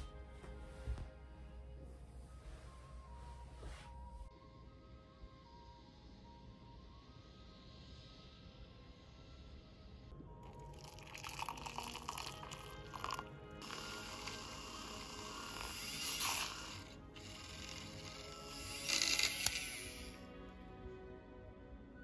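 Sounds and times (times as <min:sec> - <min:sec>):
milk frother whirring: 0:10.5 - 0:20.2.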